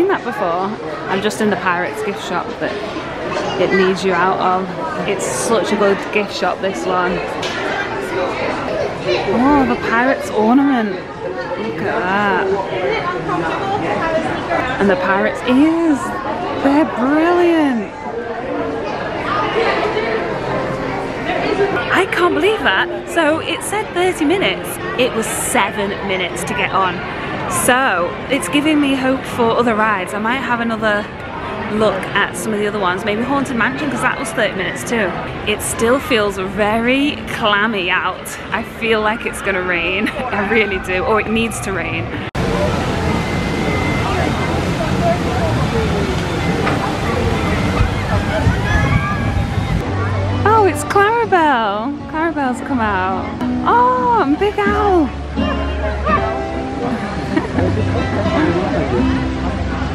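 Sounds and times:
overlapping voices chatter: 0.0 - 59.9.

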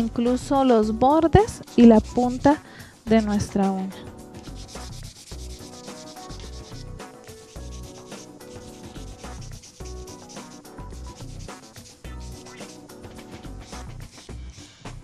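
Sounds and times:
background music with steady beat: 0.0 - 15.0
nail file rubbing on nail: 1.4 - 14.7.

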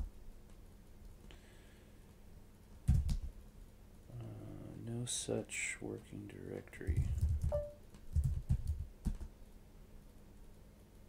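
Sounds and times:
computer keyboard typing: 6.8 - 9.3.

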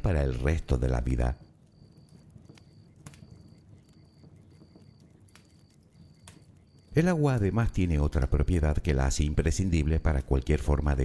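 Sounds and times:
campfire crackling: 0.0 - 11.0.

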